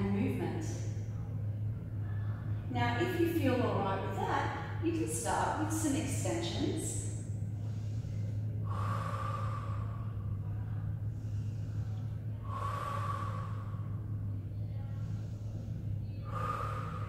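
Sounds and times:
steady low hum: 0.0s - 17.0s
woman exhaling: 8.1s - 10.4s, 11.2s - 14.3s, 16.2s - 17.0s.

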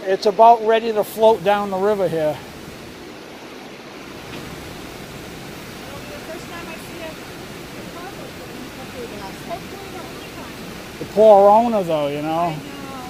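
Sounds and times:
river rushing in flood: 0.0s - 13.0s.

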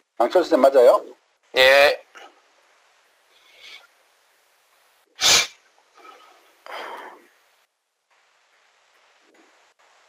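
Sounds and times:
faint low noises: 0.0s - 10.0s
sharp burst of breath: 5.2s - 5.6s.

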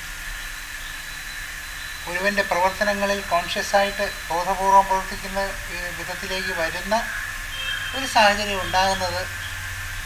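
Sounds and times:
background hiss: 0.0s - 10.0s
low hum: 0.0s - 10.0s.

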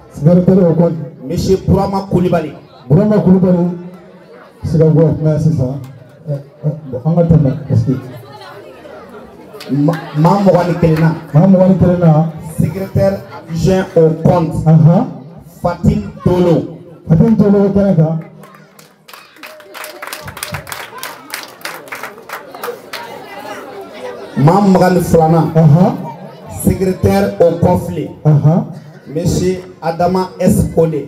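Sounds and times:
man speaking: 0.0s - 3.9s, 4.6s - 8.1s, 9.7s - 18.4s, 24.4s - 31.0s
murmur of audience chatter: 0.0s - 31.0s.

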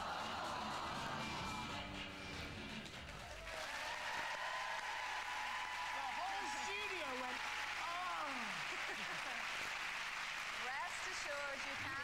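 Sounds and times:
studio audience applause: 0.0s - 1.8s, 2.4s - 12.0s
tv music cue: 0.0s - 3.4s.

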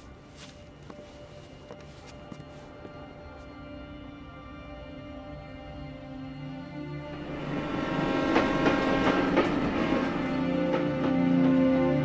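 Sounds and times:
train wheels clacking over rail joints: 7.4s - 12.0s.

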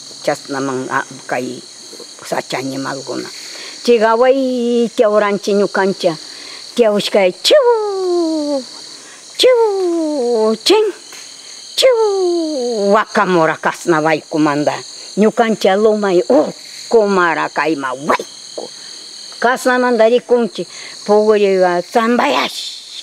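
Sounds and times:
forest insects chorus: 0.0s - 23.0s
woman speaking: 0.2s - 8.7s, 9.4s - 11.0s, 11.8s - 18.8s, 19.4s - 22.9s.

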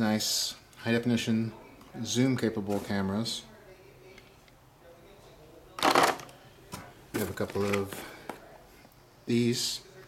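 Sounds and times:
plastic camera handling rustle: 7.2s - 8.4s.

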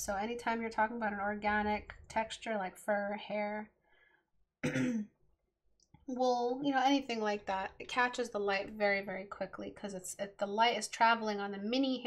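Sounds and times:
person clearing throat: 4.6s - 5.1s.

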